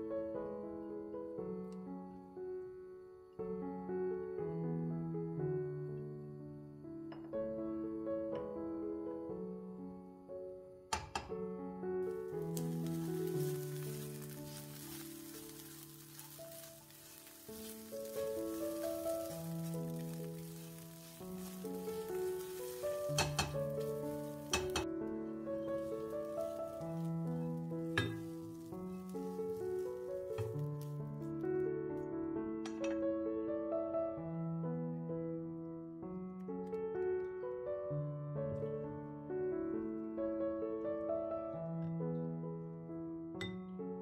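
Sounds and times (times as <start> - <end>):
soft piano music: 0.0 - 44.0
food sizzling in a pan: 12.1 - 30.9.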